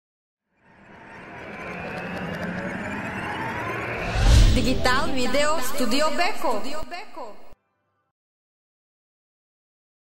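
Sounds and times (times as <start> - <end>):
synthesized whoosh: 0.5 - 6.8
low hum: 0.6 - 7.6.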